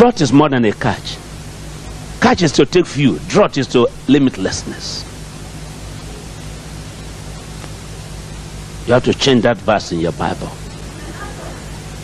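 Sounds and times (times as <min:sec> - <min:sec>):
low electrical hum: 0:00.0 - 0:12.0
recording hiss: 0:00.0 - 0:12.0.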